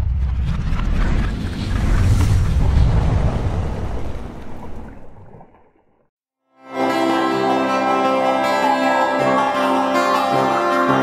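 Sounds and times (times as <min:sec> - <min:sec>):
wind rushing: 0:00.0 - 0:05.6
guitar-led song: 0:06.6 - 0:11.0.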